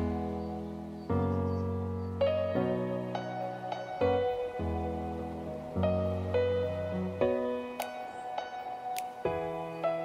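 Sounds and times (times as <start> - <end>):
slow sustained chords music: 0.0 - 10.0.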